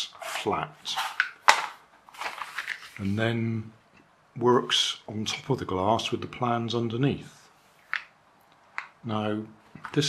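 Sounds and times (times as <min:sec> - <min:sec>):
stiff paper rustling: 0:00.0 - 0:03.2.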